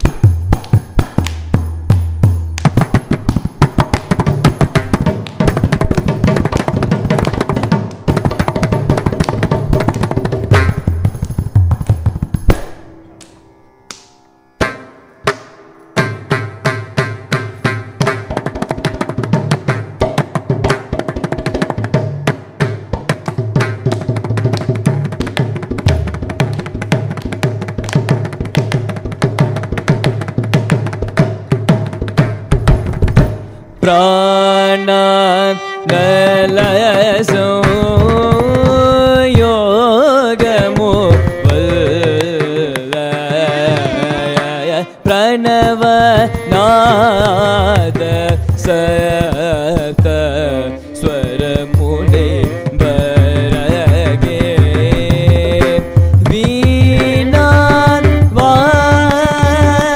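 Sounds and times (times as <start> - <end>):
hand drum fast strokes: 0.0 - 12.8, 16.0 - 33.6, 45.4 - 59.9.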